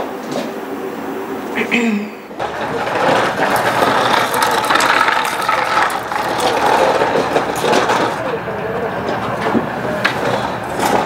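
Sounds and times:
toy wheels rattling on paving: 2.4s - 11.0s.

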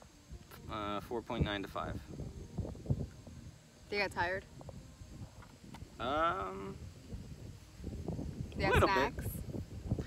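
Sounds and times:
woman speaking: 3.9s - 4.4s, 8.6s - 9.4s.

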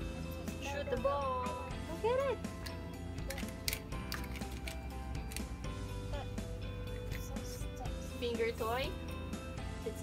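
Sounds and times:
background music: 0.0s - 10.0s
plastic toy pieces clicking: 3.3s - 5.5s.

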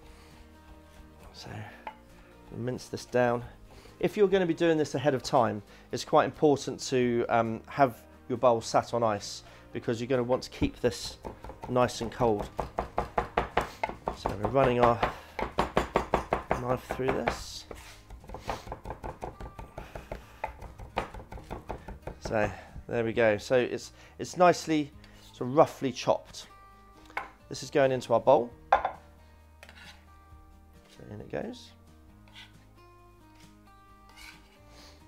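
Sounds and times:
quiet background music: 0.0s - 35.0s
knife chopping meat on wooden board: 11.0s - 22.4s
knife blade scraping: 29.6s - 30.0s, 32.3s - 32.6s, 33.4s - 34.6s.

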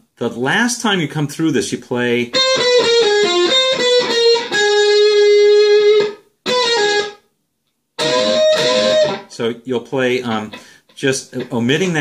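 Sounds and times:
electric guitar lead: 2.3s - 7.2s, 8.0s - 9.4s.

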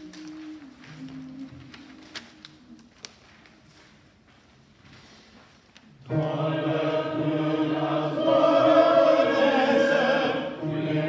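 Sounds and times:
voices singing sustained pitch: 6.1s - 11.0s.

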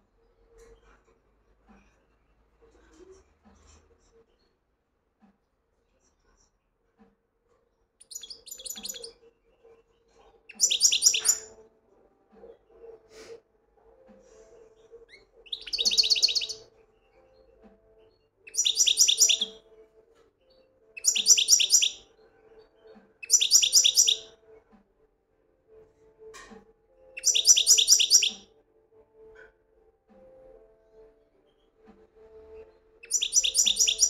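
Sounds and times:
goldfinch twittering song: 8.0s - 9.1s, 10.5s - 11.5s, 15.1s - 16.7s, 18.5s - 19.6s, 21.0s - 22.0s, 23.2s - 24.3s, 27.2s - 28.4s, 33.0s - 34.0s.

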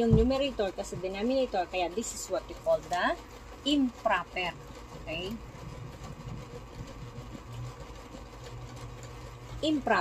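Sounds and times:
low machine hum: 0.0s - 10.0s.

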